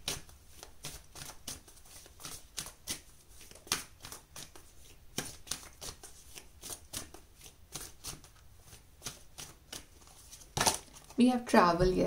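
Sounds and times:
cards being shuffled: 0.0s - 11.2s.

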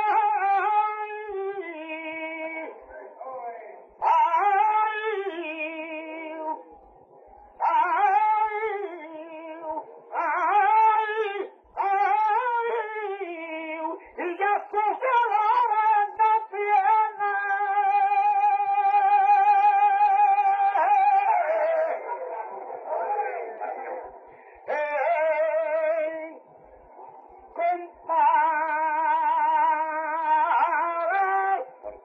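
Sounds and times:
man singing unaccompanied: 0.0s - 3.2s, 3.8s - 6.7s, 7.6s - 26.4s, 27.5s - 32.0s
singer's breath: 24.2s - 24.7s.

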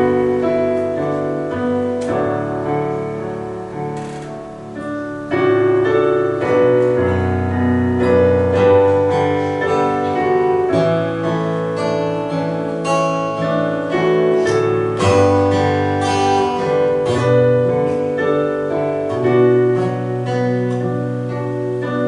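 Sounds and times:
acoustic guitar: 0.0s - 22.0s
piano: 0.0s - 22.0s.

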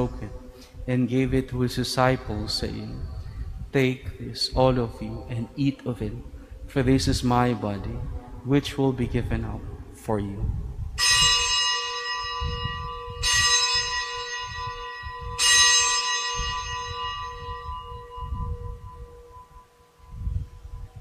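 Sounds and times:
bell ringing: 11.0s - 20.2s.

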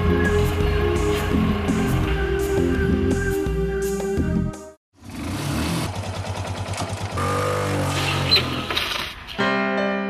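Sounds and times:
motorcycle engine running: 0.0s - 3.4s, 4.9s - 8.8s.

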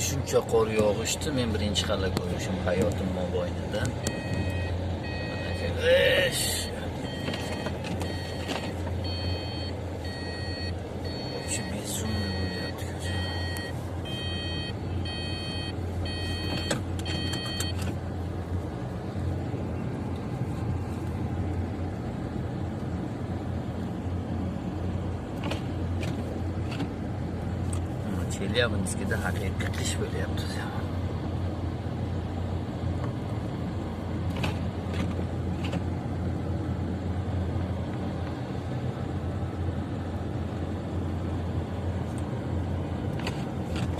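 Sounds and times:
car cabin hum: 0.0s - 43.9s
electronic beeping: 4.1s - 5.7s, 7.0s - 17.8s.

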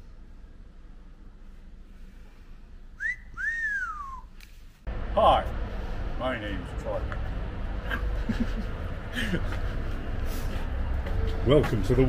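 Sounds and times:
person wolf whistling: 3.0s - 4.3s.

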